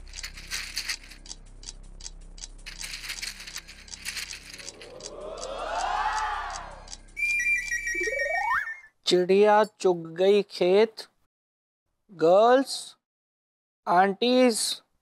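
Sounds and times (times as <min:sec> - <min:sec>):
tokens rattling: 0:00.0 - 0:05.2
comic sound effect: 0:04.6 - 0:08.9
high held tone: 0:05.0 - 0:08.9
whistle gliding up: 0:05.2 - 0:08.9.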